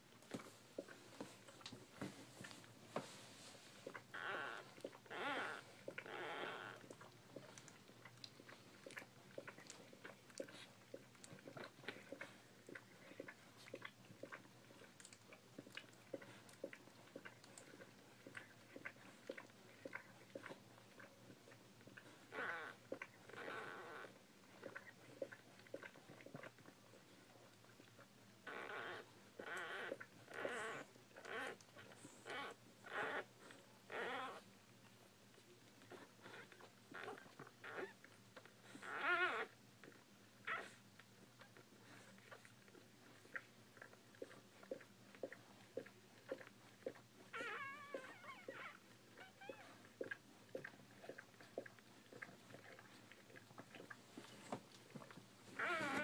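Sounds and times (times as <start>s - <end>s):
puppies whining: 3.8s - 7.6s, 28.5s - 34.4s, 38.6s - 39.6s, 43.3s - 56.0s
puppy wavering cry: 55.6s - 56.0s.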